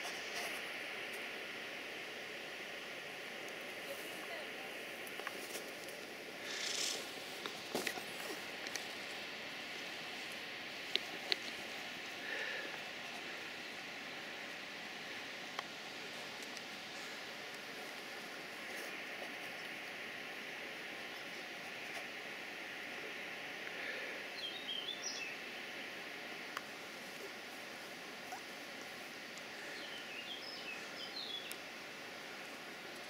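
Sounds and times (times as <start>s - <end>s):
outdoor background hiss: 0.0s - 33.0s
bird twittering: 6.5s - 7.0s.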